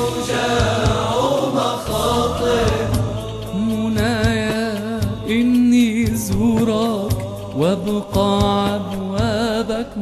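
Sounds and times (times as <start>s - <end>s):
voices chanting in harmony: 0.0s - 5.5s
low beats: 0.0s - 10.0s.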